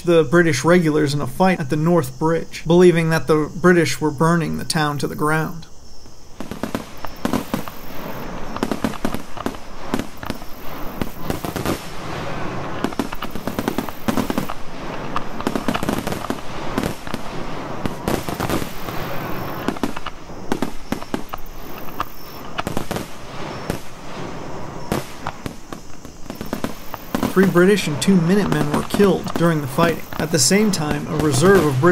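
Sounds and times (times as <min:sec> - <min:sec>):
massed musket fire: 0:06.4 - 0:31.9.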